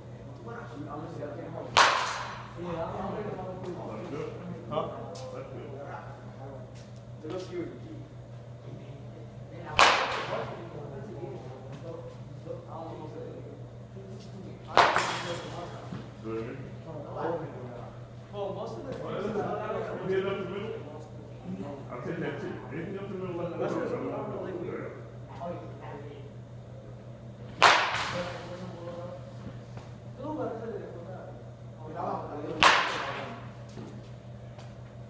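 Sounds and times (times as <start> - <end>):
low steady hum: 0.0 - 35.0
bat cracking against ball: 1.7 - 2.5, 9.7 - 10.5, 14.7 - 15.5, 27.5 - 28.4, 32.6 - 33.4.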